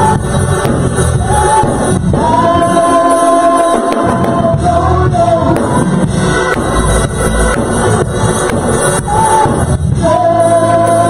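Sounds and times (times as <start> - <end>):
backing music: 0.0 - 11.0
woman singing gospel: 1.0 - 6.6, 8.8 - 11.0.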